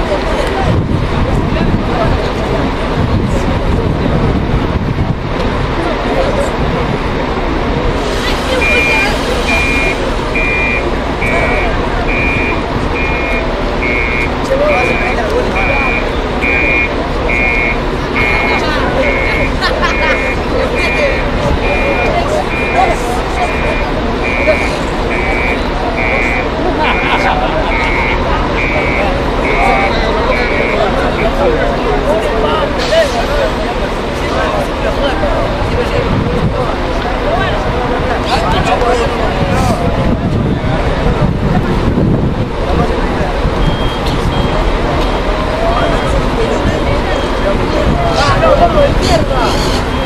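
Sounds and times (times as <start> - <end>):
background voices: 0.0 - 50.0
reversing alarm beeping: 8.4 - 31.6, 43.5 - 47.9, 49.3 - 50.0.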